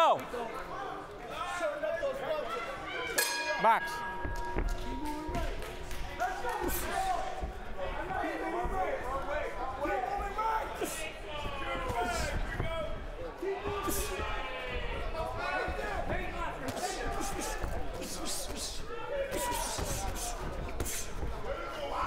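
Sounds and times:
punches landing: 4.2 - 21.6
crowd shouting: 6.2 - 20.4.

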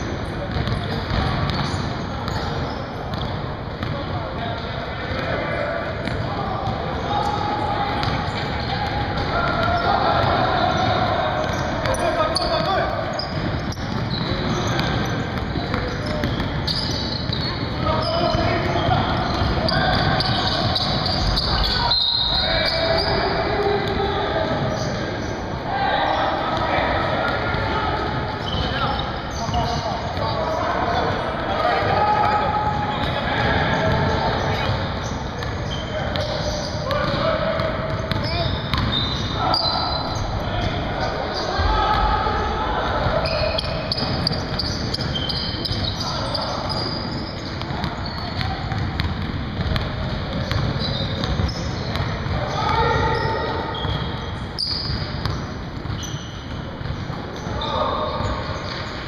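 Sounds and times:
players calling out: 0.0 - 59.0
basketball bouncing on wooden floor: 0.5 - 1.7, 37.0 - 39.0, 47.5 - 52.4, 54.8 - 57.0.

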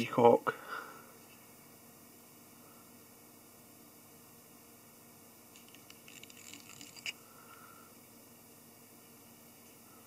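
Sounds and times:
thread scratching and rustling: 5.5 - 7.2.

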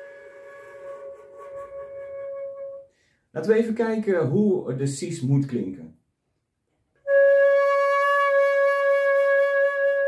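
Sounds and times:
flute holding a long note: 0.0 - 2.9, 7.1 - 10.0.

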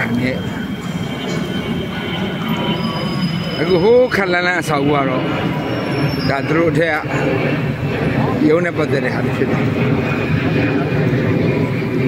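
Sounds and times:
faint voices: 0.0 - 2.7, 3.6 - 12.0.

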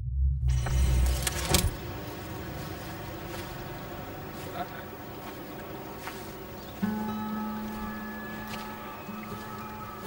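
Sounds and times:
steady background hiss: 0.7 - 10.0.

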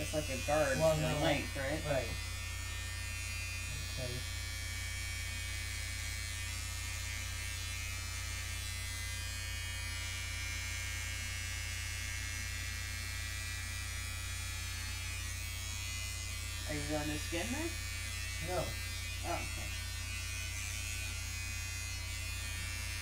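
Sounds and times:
electric hair clippers buzzing: 0.0 - 23.0.

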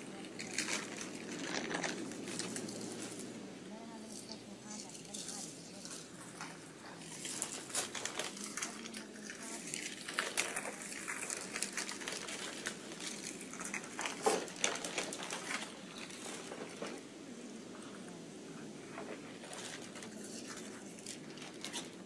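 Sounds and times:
paper and plastic crinkling: 0.0 - 22.0.

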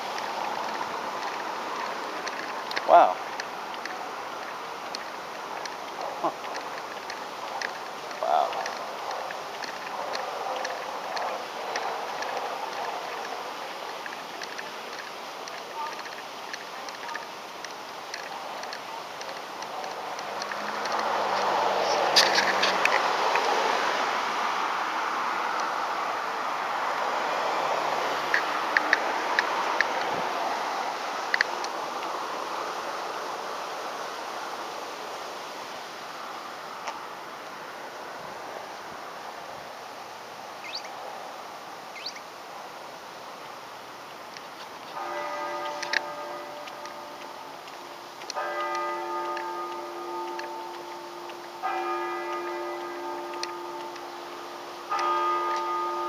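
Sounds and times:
road traffic noise: 0.0 - 56.0.

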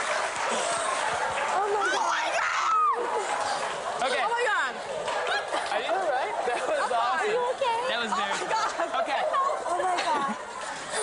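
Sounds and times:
excited chatter of voices: 0.6 - 11.0
laughter: 6.5 - 7.4, 8.1 - 11.0.

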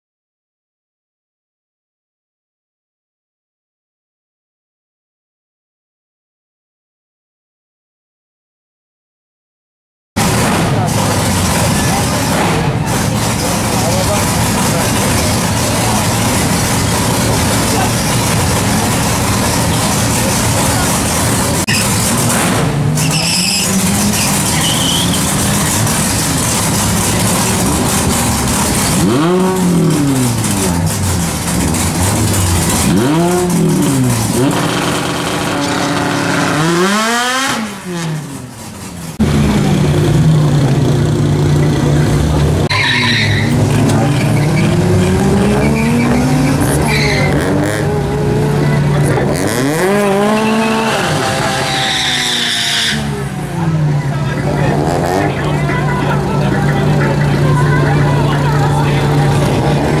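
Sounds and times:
racing car engines revving: 10.2 - 60.0
tyre squeal: 21.6 - 22.2, 22.9 - 29.3, 42.7 - 48.0, 49.6 - 53.2.

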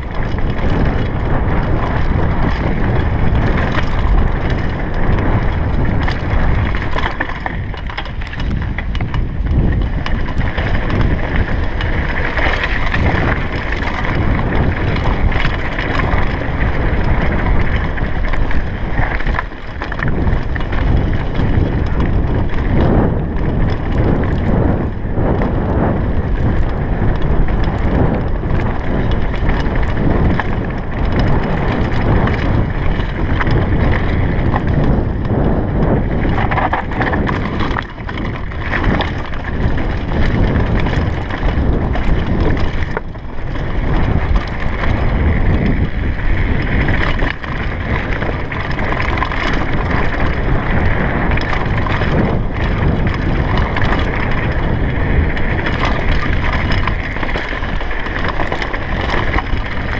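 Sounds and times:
mountain bike rattling on gravel: 0.0 - 59.9
wind noise on microphone: 0.0 - 59.9.

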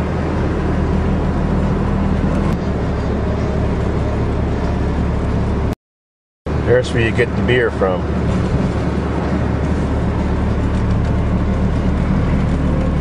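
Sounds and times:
road noise inside cabin: 0.0 - 5.8, 6.5 - 13.0
van engine drone: 0.0 - 5.8, 6.5 - 13.0.

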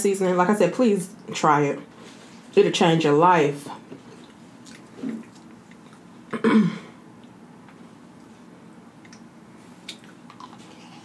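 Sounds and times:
woman clearing her throat: 6.3 - 7.0.

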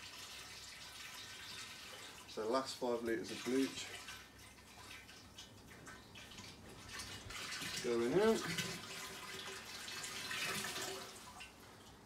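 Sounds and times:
liquid pouring into water: 3.2 - 11.6.

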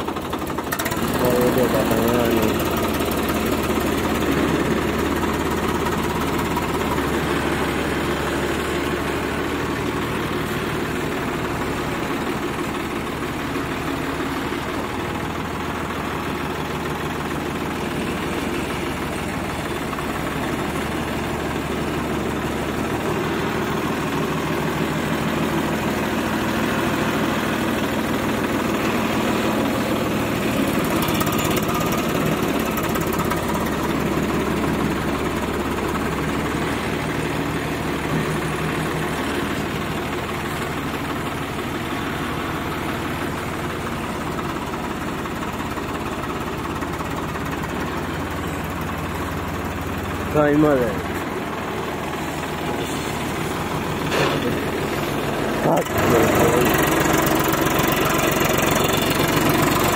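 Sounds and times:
tractor diesel engine running: 0.0 - 59.9.

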